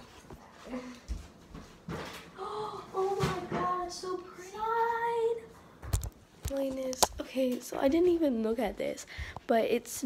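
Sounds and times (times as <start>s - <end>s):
girl singing a long note: 2.4s - 5.4s.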